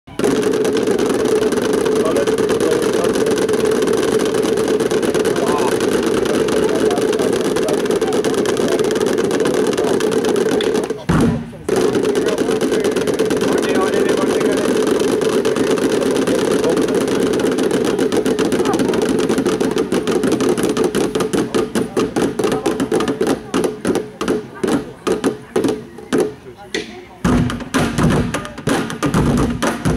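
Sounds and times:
drum roll on plastic barrels: 0.1s - 29.9s
low thud: 0.3s - 24.4s.

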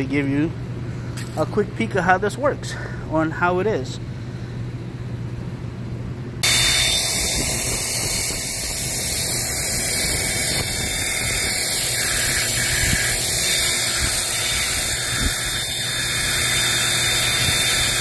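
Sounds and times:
steady low hum: 0.0s - 18.0s
pressure washer spraying water on glass: 6.4s - 18.0s.

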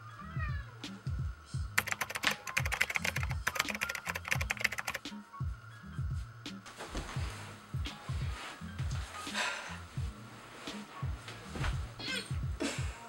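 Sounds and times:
background music with bass line: 0.0s - 2.4s, 4.4s - 13.0s
cat meowing: 0.2s - 0.8s
rapid sharp clicks: 1.8s - 5.1s.

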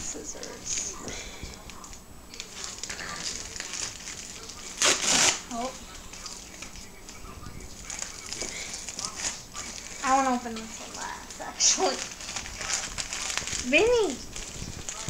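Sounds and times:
plastic mailer being torn open: 2.3s - 7.2s, 10.9s - 15.0s
loud rip: 2.6s - 6.8s, 11.6s - 13.7s.

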